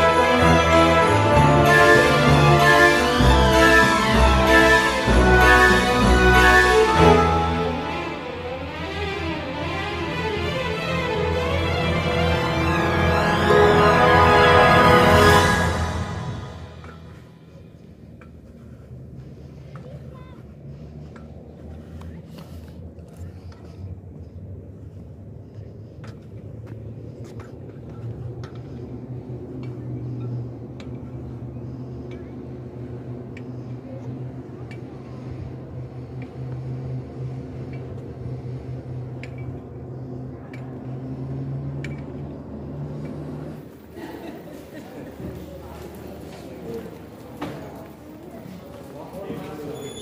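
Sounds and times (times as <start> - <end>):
low mechanical hum: 16.8 - 49.7.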